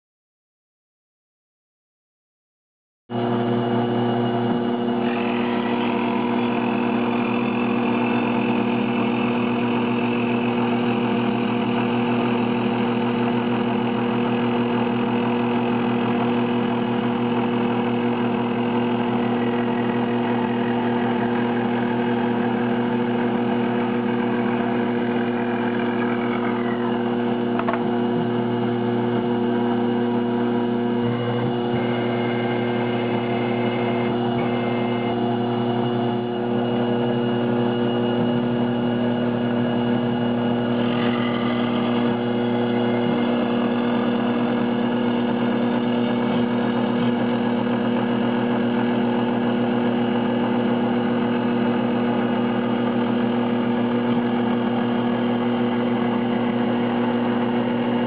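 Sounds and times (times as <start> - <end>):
milling machine hum and whine: 3.1 - 58.0.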